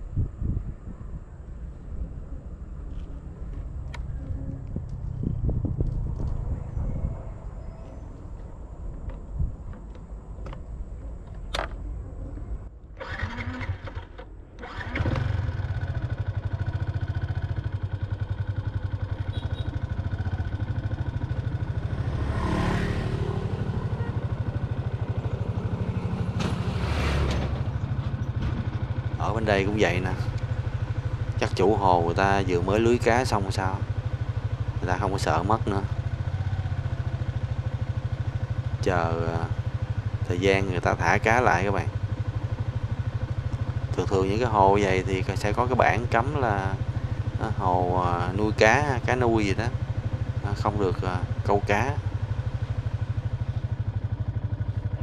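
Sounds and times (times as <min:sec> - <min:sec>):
wind rumbling on microphone: 0:00.0 - 0:13.0
motorbike engine running: 0:14.7 - 0:55.0.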